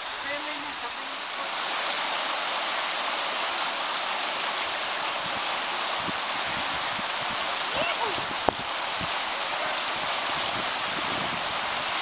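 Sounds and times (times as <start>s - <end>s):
river rapids rushing over rocks: 0.0s - 12.0s.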